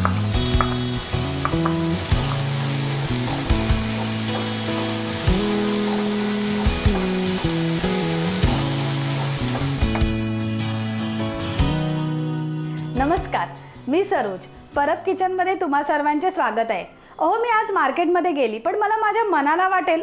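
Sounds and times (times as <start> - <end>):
food sizzling in a frying pan: 0.0 - 10.7
background music with bass line: 0.0 - 13.5.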